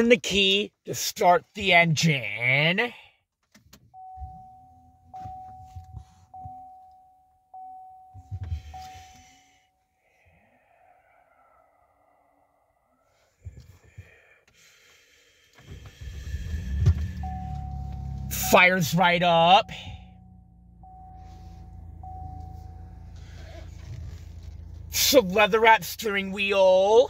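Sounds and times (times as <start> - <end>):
dash warning chime dinging: 4.0 - 9.4, 17.2 - 23.5
engine cranking and starting: 15.6 - 18.6, 19.8 - 25.2
engine idling: 15.7 - 27.0.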